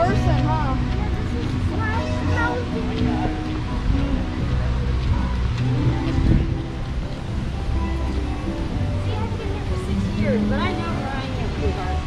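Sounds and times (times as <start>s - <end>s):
background music: 0.0s - 12.0s
passers-by talking: 0.0s - 12.0s.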